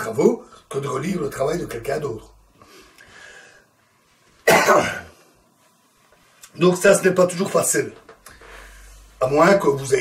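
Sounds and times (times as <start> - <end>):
man coughing: 4.4 - 5.2.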